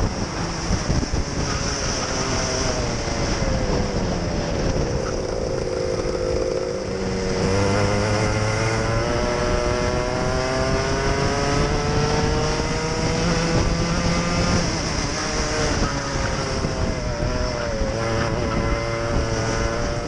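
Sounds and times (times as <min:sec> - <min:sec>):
racing kart engine revving: 0:00.3 - 0:20.0.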